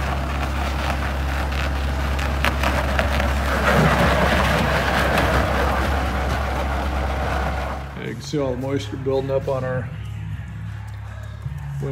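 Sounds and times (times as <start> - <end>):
diesel engine droning: 0.0 - 11.9.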